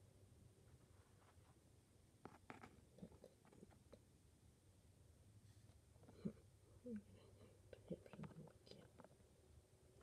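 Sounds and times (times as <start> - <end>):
faint whispering voice: 2.8 - 4.0, 6.0 - 9.2.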